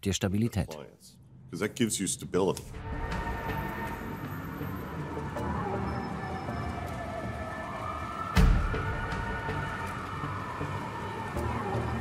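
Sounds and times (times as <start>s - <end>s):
city street traffic: 0.5s - 12.0s.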